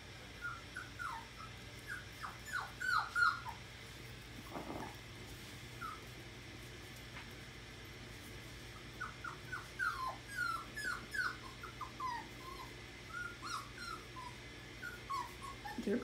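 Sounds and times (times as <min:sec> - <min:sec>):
puppies whimpering and yipping: 0:00.3 - 0:03.6, 0:05.8 - 0:06.1, 0:08.8 - 0:16.0.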